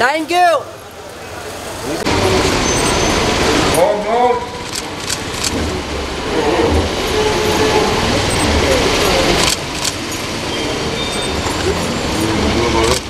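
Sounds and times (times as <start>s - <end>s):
steady wash of noise: 0.7s - 13.0s
indistinct voices: 1.3s - 13.0s
sharp clicks: 4.6s - 5.6s, 9.4s - 10.1s.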